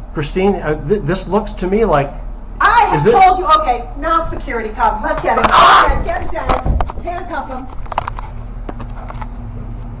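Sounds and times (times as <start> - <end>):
camera handling rumble: 5.4 - 9.9.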